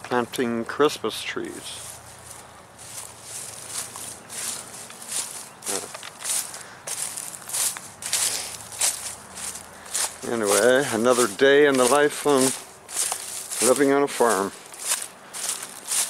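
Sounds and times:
leaves rustling: 0.0s - 16.0s
footsteps on dry leaves: 1.2s - 16.0s.

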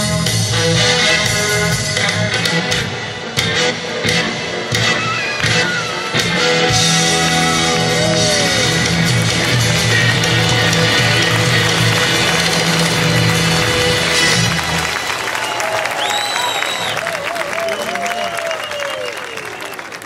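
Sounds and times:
live rock band playing: 0.0s - 15.4s
audience applauding and cheering: 4.8s - 20.0s
high whistle: 15.3s - 19.8s.

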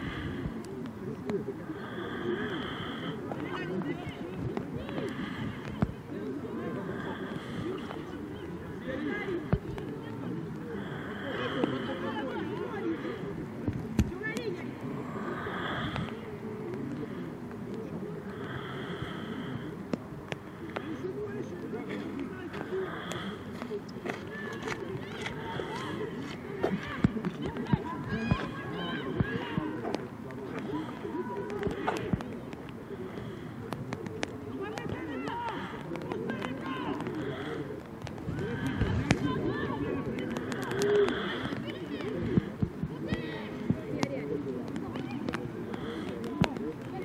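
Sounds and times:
people shouting and chattering: 0.0s - 47.0s.

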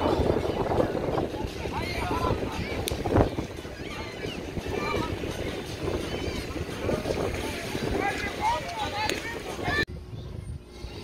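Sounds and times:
surf: 0.0s - 9.9s
wind on microphone: 0.0s - 11.0s.

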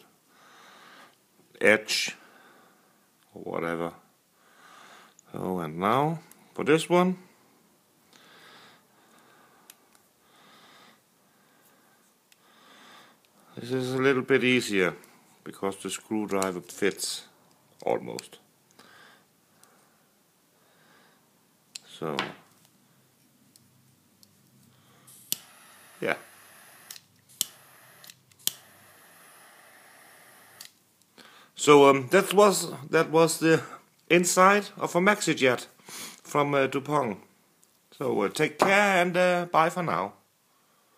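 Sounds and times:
faint breaths through nose: 0.3s - 1.2s, 2.2s - 3.1s, 4.4s - 5.3s, 7.2s - 13.6s, 18.7s - 21.4s, 24.6s - 31.6s, 35.8s - 36.3s
jet flame hissing: 24.8s - 30.8s
lighter ignition clicks: 25.1s - 30.8s.

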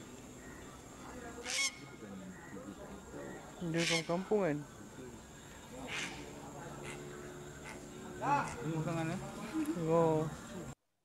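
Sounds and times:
faint animal calls: 0.4s - 4.4s, 5.7s - 8.8s.

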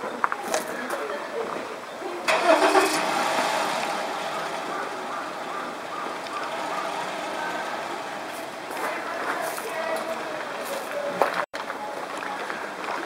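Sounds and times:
vehicle engine humming: 2.2s - 10.6s.

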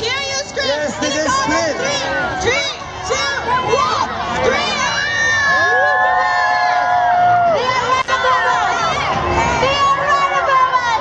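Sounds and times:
crowd screaming and cheering: 0.0s - 11.0s.

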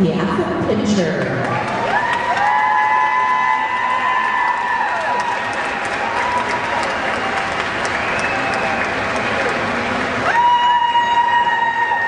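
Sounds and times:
audience applauding: 1.4s - 12.0s.

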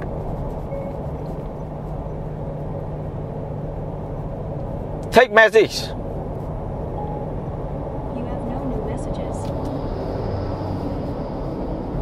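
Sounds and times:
road and engine noise in cabin: 0.0s - 12.0s.

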